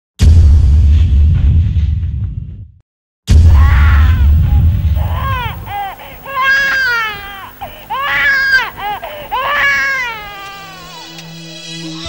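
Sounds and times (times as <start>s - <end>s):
voice wailing: 3.5s - 11.2s.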